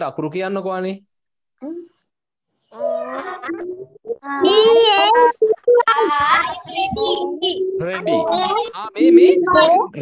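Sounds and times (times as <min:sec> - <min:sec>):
children speaking: 0:02.8 - 0:10.0.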